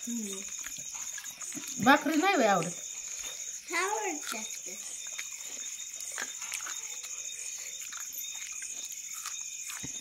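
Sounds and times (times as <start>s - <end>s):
chewing: 0.0s - 10.0s.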